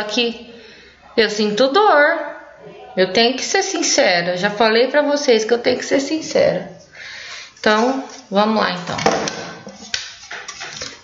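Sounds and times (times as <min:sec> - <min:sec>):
items handled on tabletop: 0:07.6 - 0:11.0.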